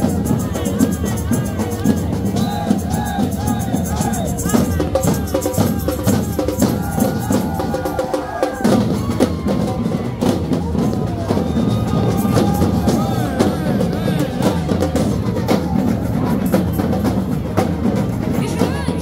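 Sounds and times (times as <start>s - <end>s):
samba drums playing: 0.0s - 19.0s.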